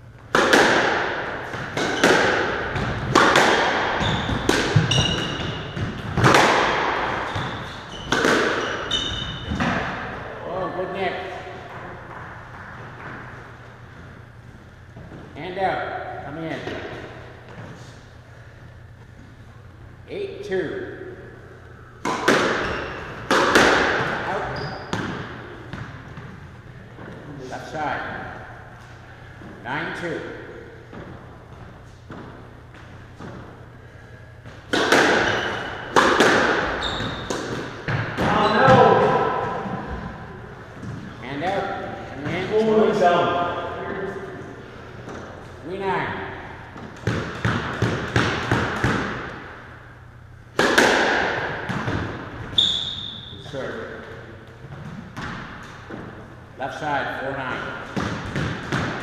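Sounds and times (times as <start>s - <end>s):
squash ball impacts echoing: 0.0s - 17.7s, 19.6s - 56.5s, 57.4s - 59.0s.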